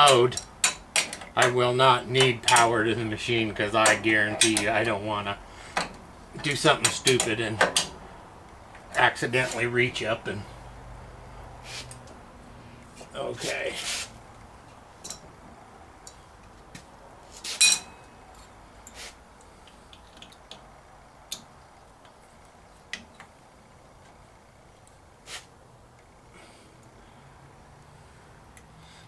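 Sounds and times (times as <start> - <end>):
ringing metal clink: 17.6 - 18.1.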